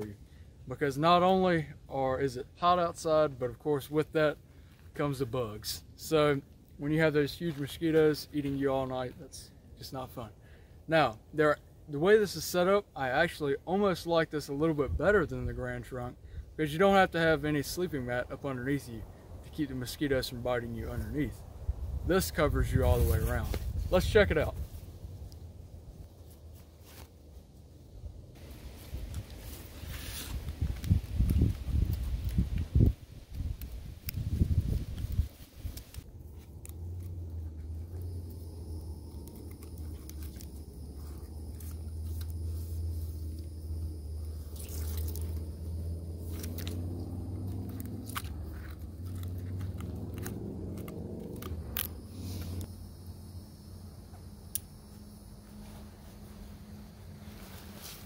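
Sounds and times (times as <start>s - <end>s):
low steady hum: 0.0s - 58.0s
nylon sack and cord rustling: 28.4s - 33.6s, 55.5s - 58.0s.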